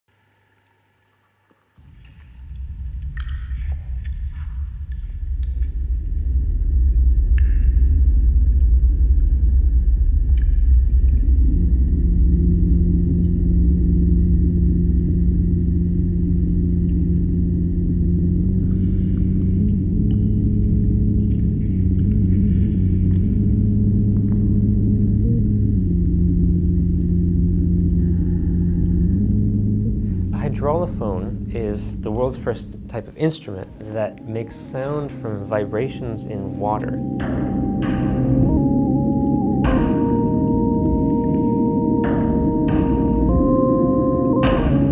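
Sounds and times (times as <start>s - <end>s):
deep rumble: 1.8s - 44.9s
low organ-like notes: 10.1s - 44.9s.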